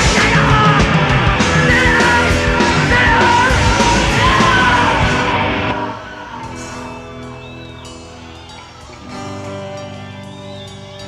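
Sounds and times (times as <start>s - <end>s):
high held vocal: 0.0s - 11.0s
live rock band playing: 0.0s - 11.0s.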